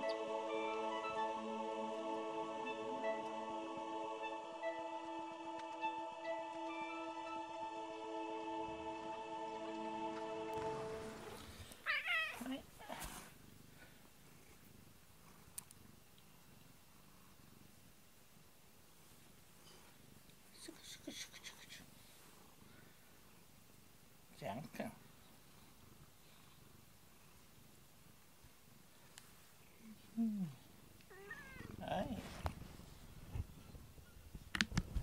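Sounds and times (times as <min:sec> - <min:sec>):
background music: 0:00.0 - 0:11.8
cat purring: 0:02.6 - 0:03.4, 0:04.2 - 0:07.4, 0:10.5 - 0:35.0
cat meowing: 0:11.8 - 0:12.7, 0:31.1 - 0:31.8.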